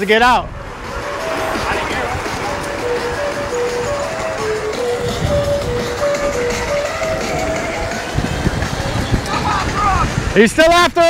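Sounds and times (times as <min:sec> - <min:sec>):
background music melody: 0:00.0 - 0:10.4
wind on microphone: 0:00.4 - 0:11.0
skateboard wheels rolling: 0:00.5 - 0:10.4.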